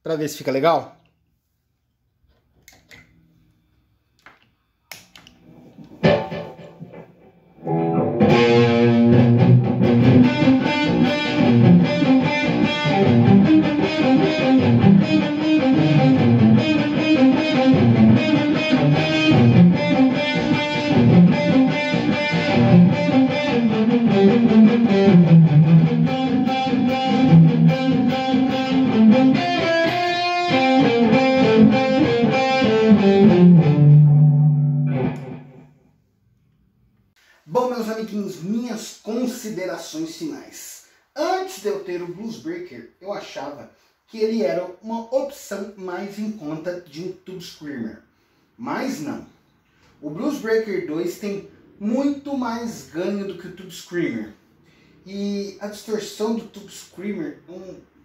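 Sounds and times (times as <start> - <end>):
distorted electric guitar: 5.4 - 35.7.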